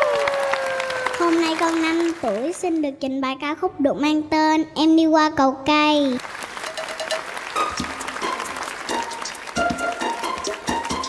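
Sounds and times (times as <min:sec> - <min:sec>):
studio audience applauding: 0:00.0 - 0:02.8, 0:06.2 - 0:11.0
faint instrumental music: 0:06.7 - 0:11.0.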